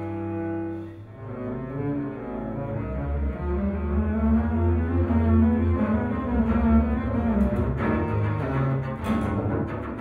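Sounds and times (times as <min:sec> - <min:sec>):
double basses bowing low notes: 0:00.0 - 0:10.0.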